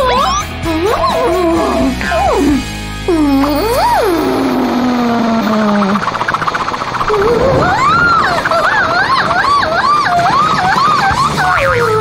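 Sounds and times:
warbling siren wail: 0:05.8 - 0:11.7
low rumble: 0:06.0 - 0:10.4.

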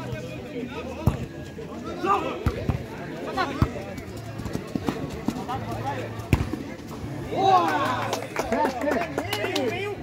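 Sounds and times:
ball being kicked: 0:02.4 - 0:02.9, 0:06.2 - 0:06.6.

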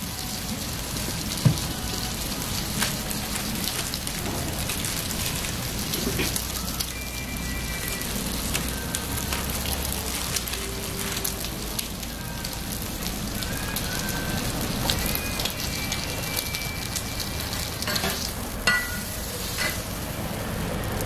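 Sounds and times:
bread sizzling on a griddle: 0:00.0 - 0:21.0.

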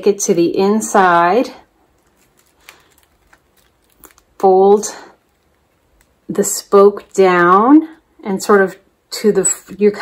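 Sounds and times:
faint rustling of basket weaving: 0:01.4 - 0:10.0
soft clicks of bent weavers: 0:01.9 - 0:07.4.

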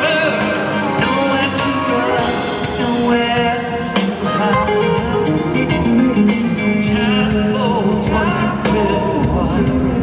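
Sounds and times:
guitar: 0:00.0 - 0:10.0
lead vocal singing: 0:00.0 - 0:10.0
soft rock band playing: 0:00.0 - 0:10.0.

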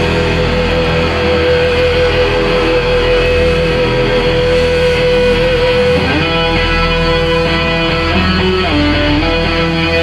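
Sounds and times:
gospel band music: 0:00.0 - 0:10.0.

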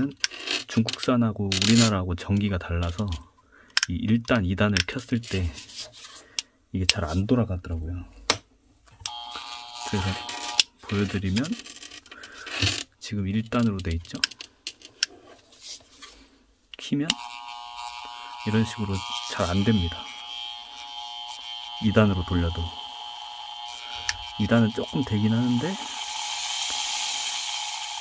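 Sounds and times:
rotary tool whining: 0:09.1 - 0:12.9, 0:17.1 - 0:28.0.

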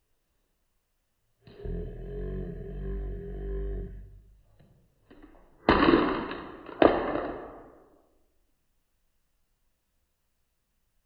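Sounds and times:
plastic container clattering on floor: 0:05.2 - 0:07.7.

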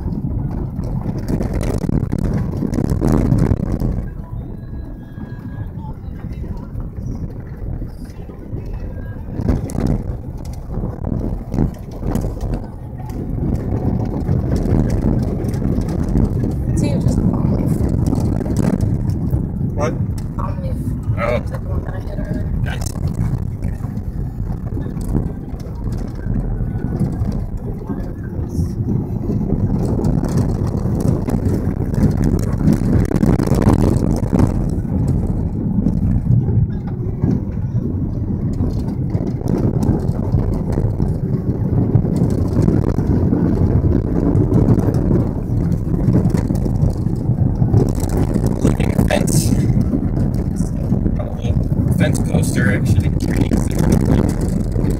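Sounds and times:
car engine and tyres on dirt: 0:00.0 - 0:54.9.

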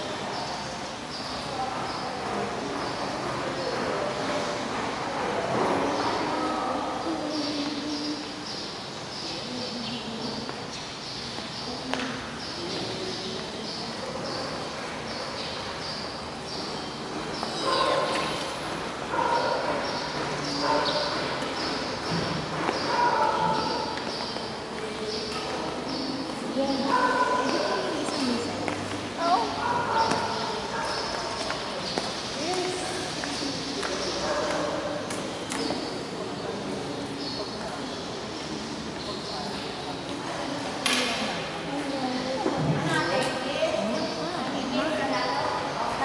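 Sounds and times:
faint voices: 0:00.0 - 0:46.0.

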